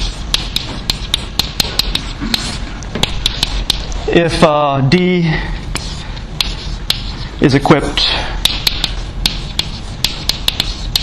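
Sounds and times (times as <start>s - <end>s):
chalk tapping and scraping on blackboard: 0.0s - 4.0s, 5.7s - 7.3s, 8.0s - 11.0s.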